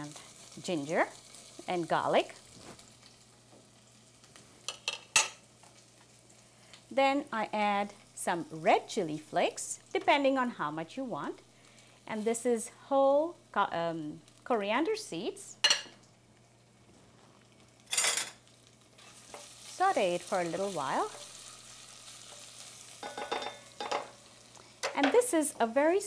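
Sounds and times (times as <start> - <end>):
faint sizzle in oil: 0.0 - 26.0
kitchenware clinking: 4.7 - 5.4, 15.6 - 16.0, 17.9 - 18.4, 23.0 - 24.2.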